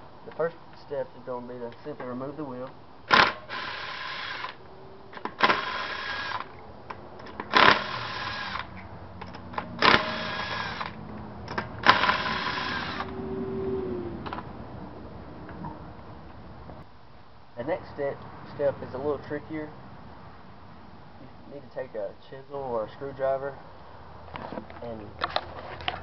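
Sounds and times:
impact wrench hammering: 0:09.8 - 0:10.9.

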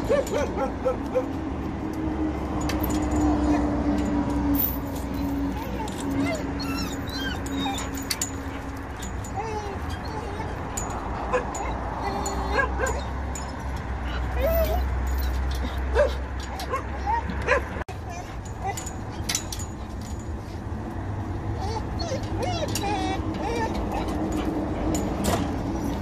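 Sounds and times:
dogs whining and yipping: 0:00.0 - 0:01.5, 0:02.6 - 0:19.8, 0:21.2 - 0:26.0.

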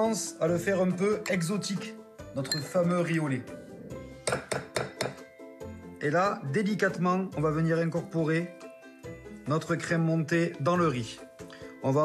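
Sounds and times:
background music with steady tones: 0:00.0 - 0:12.0.

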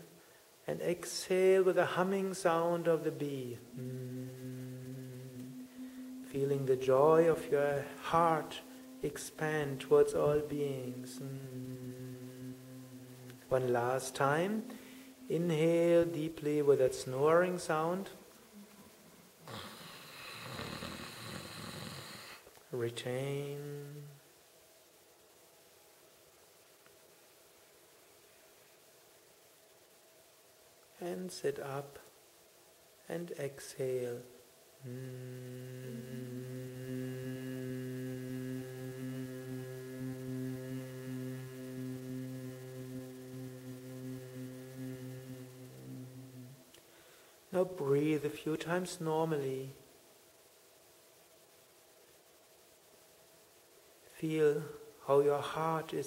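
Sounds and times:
low humming breath: 0:03.3 - 0:17.4, 0:34.8 - 0:47.5
person inhaling with throat snore: 0:19.5 - 0:22.4.

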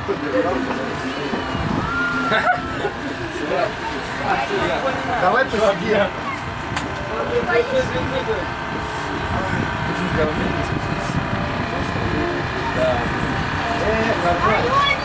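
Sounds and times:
spectators shouting and cheering: 0:00.9 - 0:04.1.

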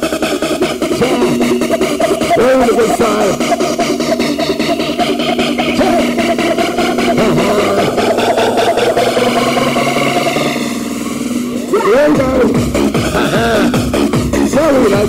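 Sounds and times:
hardcore rave music: 0:00.0 - 0:15.0.

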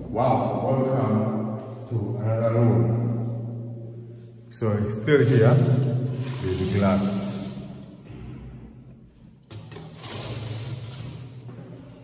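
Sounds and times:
sliding window scraping open: 0:10.0 - 0:11.3.

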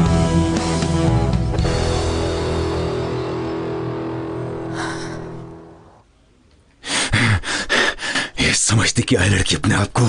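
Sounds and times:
man gasping breaths: 0:06.8 - 0:08.4.

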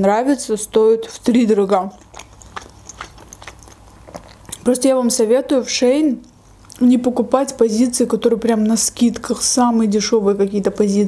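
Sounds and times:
person chewing with mouth closed: 0:01.1 - 0:04.8.

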